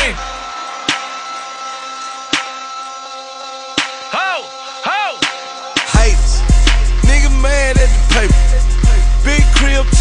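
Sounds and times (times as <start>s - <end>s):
hip-hop backing track chord: 0.0s - 10.0s.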